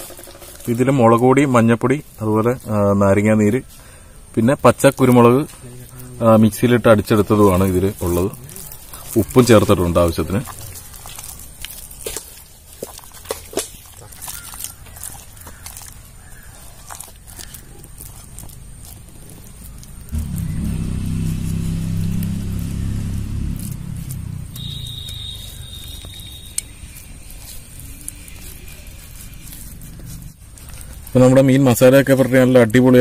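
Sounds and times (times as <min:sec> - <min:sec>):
hands squelching wet paste on fish: 0:00.0 - 0:33.0.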